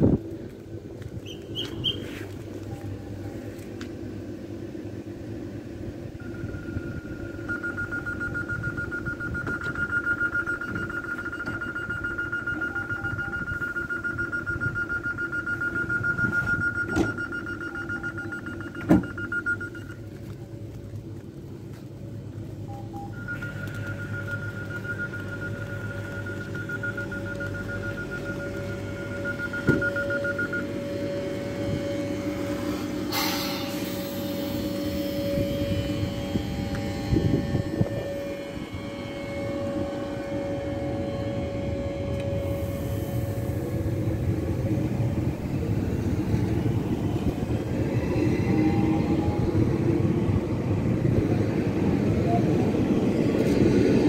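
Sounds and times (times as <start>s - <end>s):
train equipment humming: 0.0s - 54.0s
rapid pulsing electronic beep: 6.2s - 20.0s, 22.6s - 41.4s.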